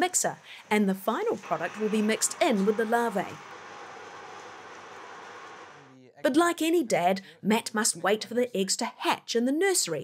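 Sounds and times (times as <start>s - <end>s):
electric grinder running: 0.0s - 5.8s.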